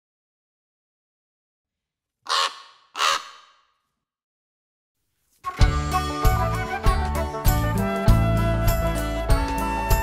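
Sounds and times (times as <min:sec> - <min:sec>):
crow cawing: 0:02.3 - 0:03.8.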